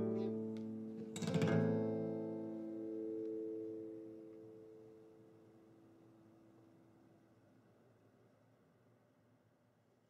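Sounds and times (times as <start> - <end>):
acoustic guitar chord ringing: 0.0 - 5.2.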